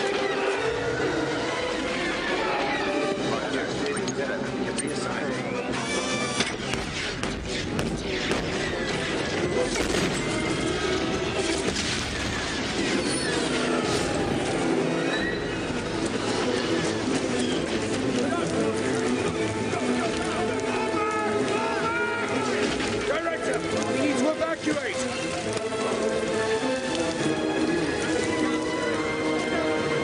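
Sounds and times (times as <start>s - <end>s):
film score music: 0.0s - 30.0s
blaster fire: 6.3s - 17.8s
explosions: 6.4s - 17.9s.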